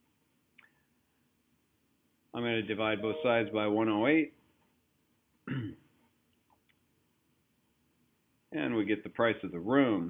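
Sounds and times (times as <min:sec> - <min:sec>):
man clearing his throat: 0:05.4 - 0:05.9.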